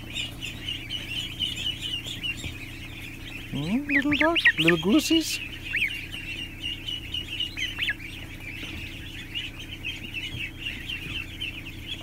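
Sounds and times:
ducklings and goslings peeping: 0.0s - 12.0s
steady low hum: 0.0s - 12.0s.

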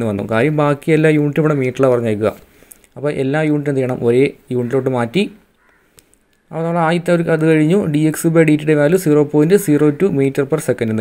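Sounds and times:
man speaking: 0.0s - 5.5s, 6.5s - 11.0s.

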